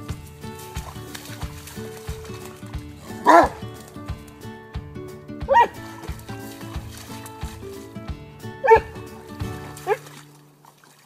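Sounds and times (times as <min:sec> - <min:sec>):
music with steady beat: 0:00.0 - 0:10.2
dog barks: 0:03.1 - 0:03.6, 0:05.5 - 0:06.0, 0:08.6 - 0:09.0, 0:09.8 - 0:10.0.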